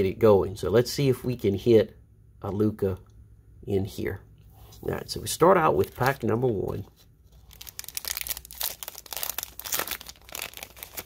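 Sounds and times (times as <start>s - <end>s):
plastic bag crinkling: 5.7s - 6.4s, 7.3s - 11.0s.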